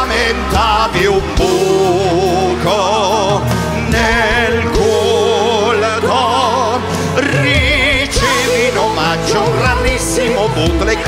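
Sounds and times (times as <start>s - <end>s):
live band music: 0.0s - 11.0s
person singing with vibrato: 0.0s - 11.0s
steady bass: 0.0s - 11.0s.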